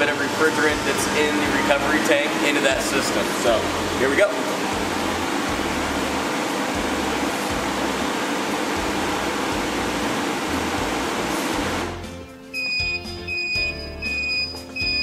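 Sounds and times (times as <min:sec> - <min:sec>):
high-pitched alarm beeping: 0:12.5 - 0:15.0.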